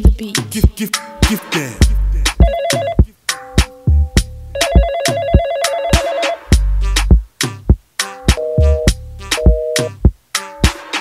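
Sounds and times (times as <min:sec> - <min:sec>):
hip-hop beat: 0:00.0 - 0:11.0
telephone ringing: 0:02.4 - 0:03.0, 0:04.6 - 0:06.5, 0:08.4 - 0:09.9.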